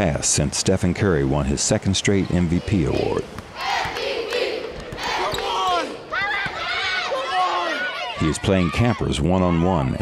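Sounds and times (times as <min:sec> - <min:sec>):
children shouting and cheering: 0:02.5 - 0:10.0.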